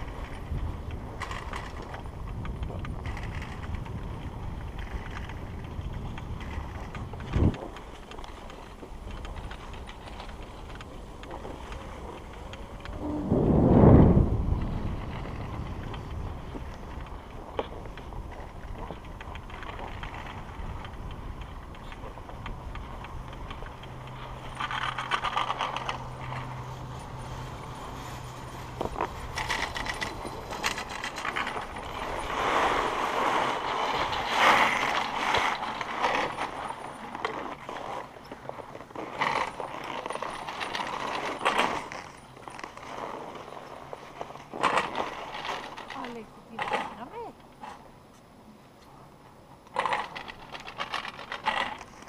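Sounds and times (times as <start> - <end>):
skis sliding over packed snow: 0.0 - 47.4, 49.6 - 52.0
rope running over rollers clatter: 0.0 - 47.8, 49.6 - 52.0
low steady hum: 0.0 - 52.0.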